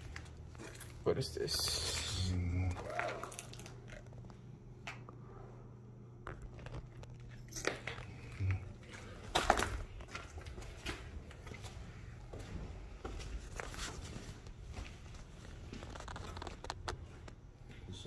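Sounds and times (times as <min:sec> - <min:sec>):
footsteps crunching on debris: 0:00.0 - 0:04.1, 0:06.3 - 0:17.9.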